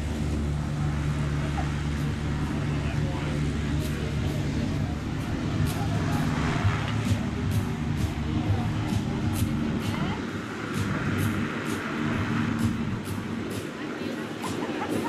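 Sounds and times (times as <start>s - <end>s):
light airplane engine drone: 0.0s - 15.0s.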